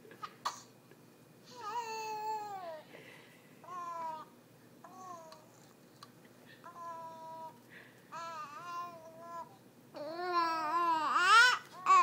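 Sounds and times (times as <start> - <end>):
baby cooing: 1.5 - 2.9, 3.6 - 5.6, 6.7 - 12.0.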